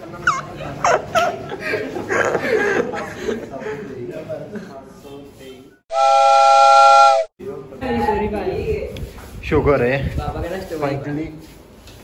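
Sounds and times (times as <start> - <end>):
steam whistle chord: 5.9 - 7.3.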